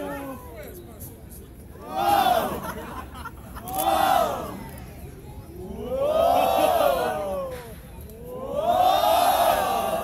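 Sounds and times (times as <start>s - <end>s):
group shouting together: 8.3s - 10.0s.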